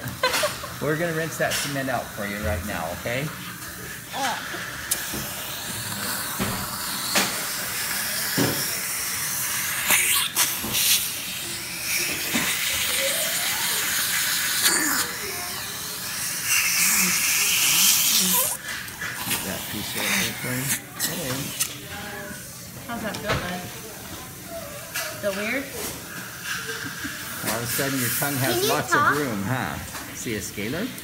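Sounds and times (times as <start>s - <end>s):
dental air-water syringe spraying: 4.2s - 21.8s, 26.1s - 29.4s.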